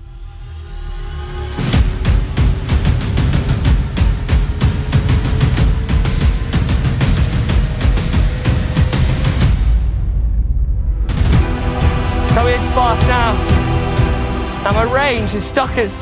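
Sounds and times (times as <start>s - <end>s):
soundtrack music with drum beat: 1.3s - 16.0s.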